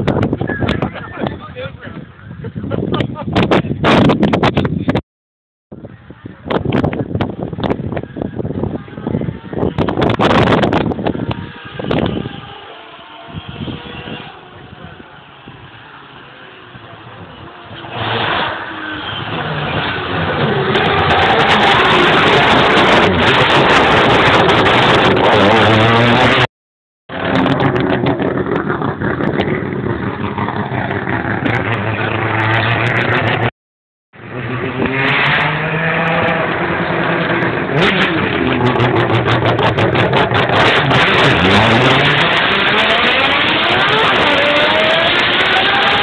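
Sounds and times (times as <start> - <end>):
race car engine passing: 34.2 - 46.0.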